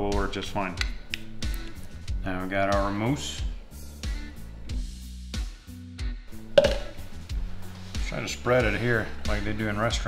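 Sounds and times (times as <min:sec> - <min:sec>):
music with drum beat and bass: 0:04.0 - 0:10.0.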